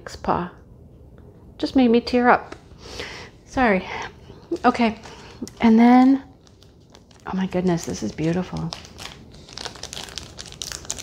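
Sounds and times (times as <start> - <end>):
packaging crinkling: 4.3 - 11.0.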